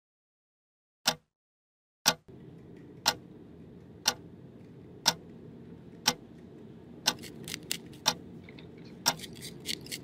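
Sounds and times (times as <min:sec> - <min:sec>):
wall clock ticking: 0:02.1 - 0:07.2, 0:08.0 - 0:08.3
low steady hum: 0:02.3 - 0:10.0.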